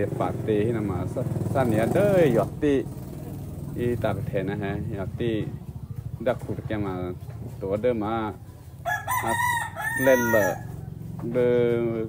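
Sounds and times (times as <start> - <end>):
rooster crowing: 8.8 - 11.0.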